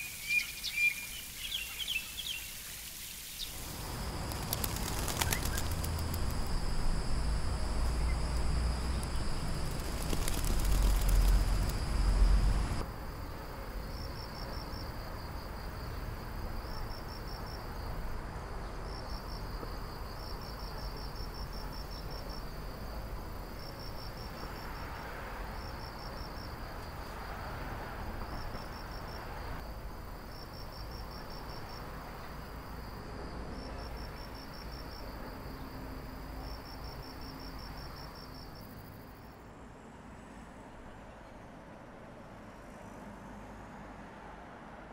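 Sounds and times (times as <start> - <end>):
outdoor background hiss: 0.0 - 44.9
insects chirping in pulsed trills: 3.3 - 18.2.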